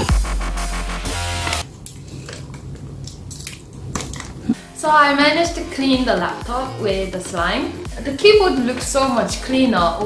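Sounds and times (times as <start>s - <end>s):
electronic music: 0.0s - 1.6s.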